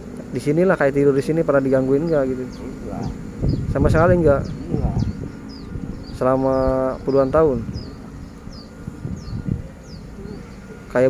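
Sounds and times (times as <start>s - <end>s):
low outdoor rumble: 0.0s - 11.0s
small bird chirping: 0.2s - 11.0s.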